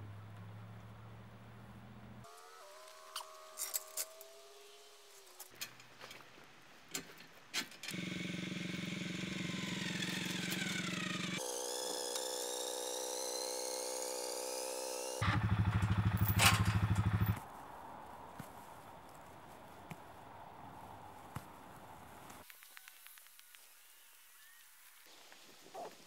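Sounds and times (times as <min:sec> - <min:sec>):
motor engine running with whine: 0:02.2 - 0:05.1, 0:08.0 - 0:17.4.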